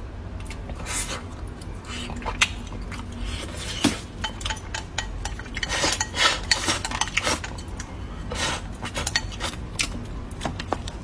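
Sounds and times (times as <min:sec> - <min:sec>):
eating noises: 0:00.4 - 0:10.0
chopsticks scraping a ceramic bowl: 0:03.4 - 0:07.7.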